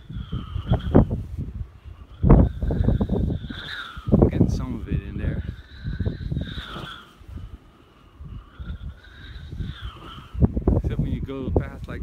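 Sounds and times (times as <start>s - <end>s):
wind gusting over microphone: 0.0s - 12.0s.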